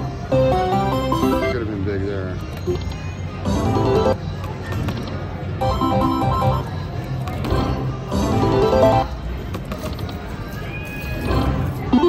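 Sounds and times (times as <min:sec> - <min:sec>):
casino background noise: 0:00.0 - 0:12.0
slot machine jingles: 0:00.2 - 0:01.6, 0:05.6 - 0:06.8.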